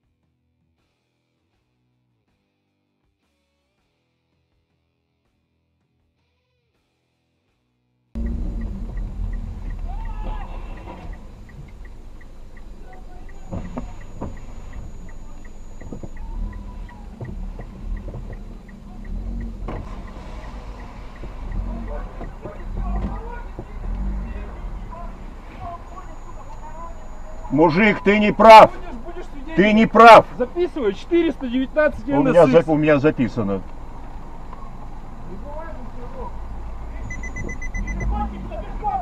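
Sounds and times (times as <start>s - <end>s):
car engine from inside cabin: 8.2s - 39.0s
road rumble: 8.2s - 39.0s
steady light ticking: 8.2s - 39.0s
muffled men's voices: 21.4s - 33.7s, 38.0s - 39.0s.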